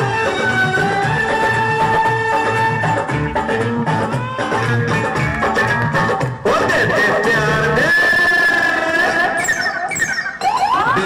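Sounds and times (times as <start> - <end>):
dance music: 0.0 - 11.0.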